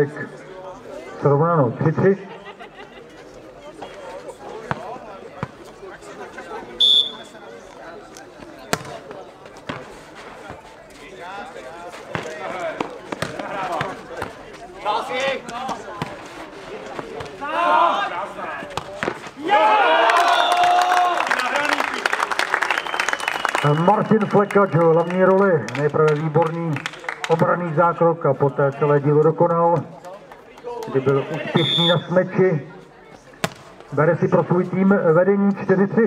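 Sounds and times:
players calling out: 0:03.8 - 0:07.4, 0:11.3 - 0:25.4, 0:30.9 - 0:32.7
crowd shouting and cheering: 0:17.2 - 0:25.8
people clapping: 0:19.6 - 0:27.5, 0:30.0 - 0:31.4
ball thuds: 0:33.4 - 0:33.7.

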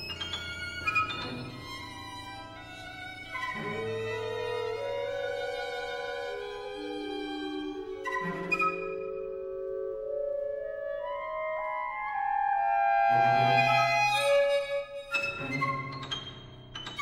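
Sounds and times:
chamber ensemble held notes: 0:00.0 - 0:14.9.

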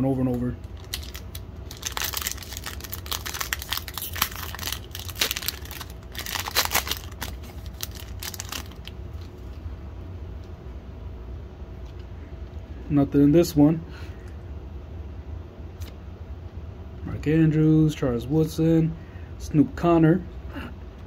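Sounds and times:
card pack wrapper tearing: 0:00.7 - 0:08.9.

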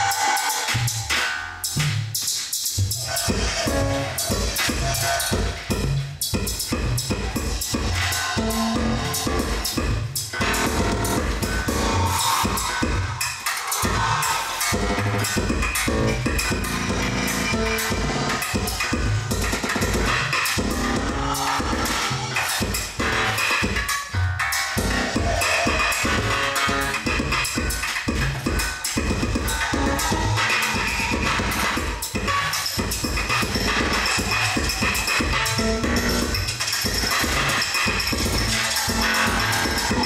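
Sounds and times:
live electronic music: 0:00.0 - 0:40.0
heavy low bass pulses: 0:02.8 - 0:13.2, 0:13.8 - 0:18.4
low bass pulses: 0:13.8 - 0:18.3.

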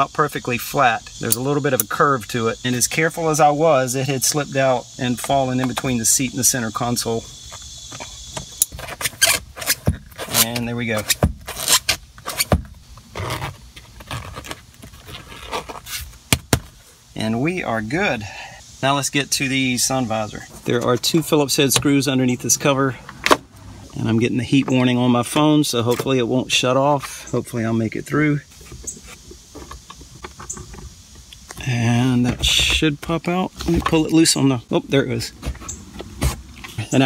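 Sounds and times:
scraping on armrest: 0:08.0 - 0:16.2.

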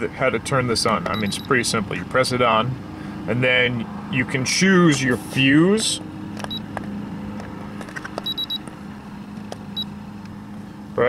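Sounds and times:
electronic tester beeping: 0:01.0 - 0:01.6, 0:06.4 - 0:06.7, 0:08.2 - 0:08.7, 0:09.6 - 0:10.0.

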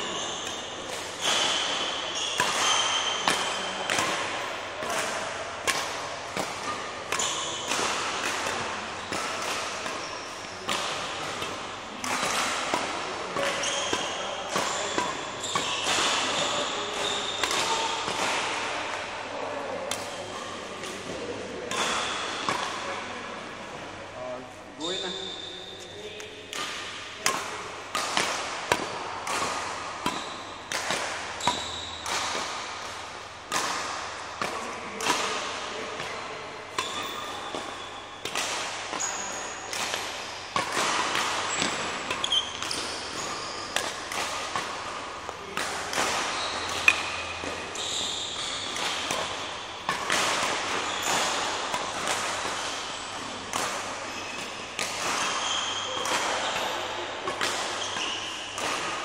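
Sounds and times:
shoe squeaks: 0:00.0 - 0:03.7, 0:07.2 - 0:07.7, 0:13.5 - 0:18.0, 0:24.8 - 0:26.3, 0:31.4 - 0:32.0, 0:36.8 - 0:38.2, 0:39.0 - 0:39.7, 0:41.5 - 0:43.8, 0:46.3 - 0:48.9, 0:50.8 - 0:51.3, 0:54.1 - 0:54.6, 0:55.3 - 0:56.6, 0:57.8 - 0:58.5.

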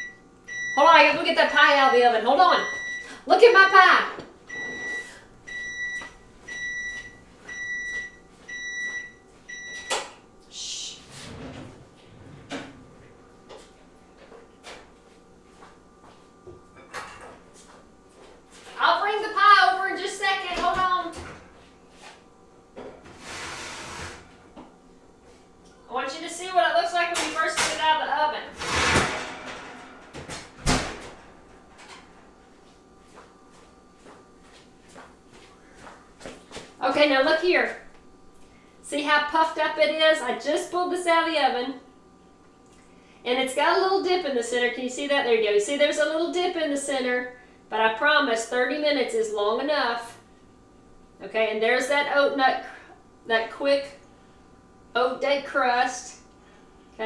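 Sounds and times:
oven timer beeping: 0:00.0 - 0:10.1
door shutting: 0:28.6 - 0:32.0.

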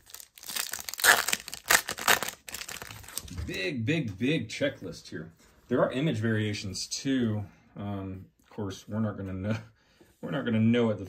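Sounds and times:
foil wrapper crinkling and tearing: 0:00.0 - 0:03.3.

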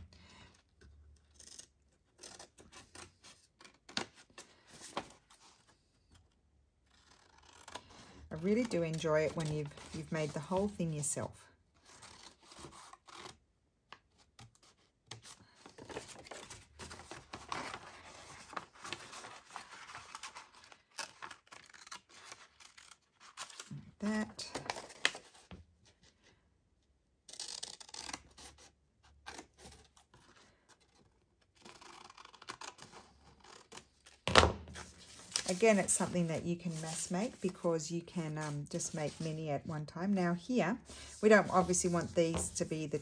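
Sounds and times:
paper rustling: 0:14.0 - 0:26.0, 0:34.7 - 0:39.5, 0:40.7 - 0:43.0.

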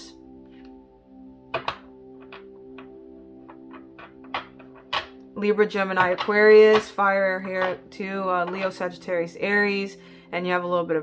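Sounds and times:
soft background music: 0:00.0 - 0:11.0
cards tapping on a table: 0:01.5 - 0:02.4.

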